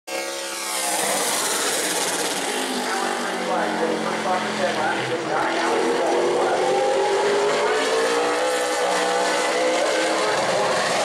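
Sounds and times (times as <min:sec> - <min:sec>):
race car engine running: 0:00.4 - 0:11.0.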